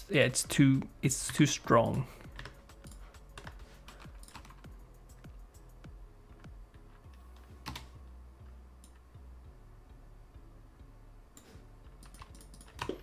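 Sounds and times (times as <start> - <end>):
computer keyboard keys clicking: 2.3 - 4.8, 7.1 - 8.0, 12.0 - 13.0.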